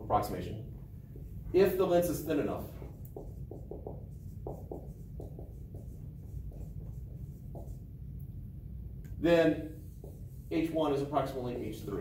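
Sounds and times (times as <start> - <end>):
marker squeaking on whiteboard: 3.0 - 7.8.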